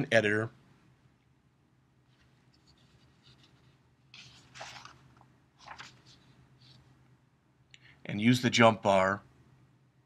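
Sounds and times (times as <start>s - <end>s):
low steady hum: 0.0s - 10.0s
faint rustling scraping: 2.1s - 6.9s.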